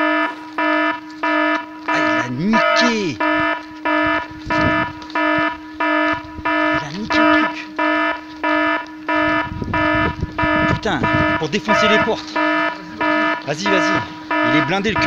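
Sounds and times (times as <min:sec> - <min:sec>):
constant low tone: 0:00.0 - 0:15.0
electronic alarm beeping: 0:00.0 - 0:15.0.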